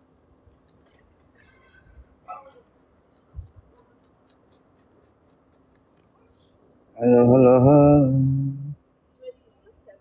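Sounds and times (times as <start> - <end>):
faint high squeak: 1.3 - 2.6.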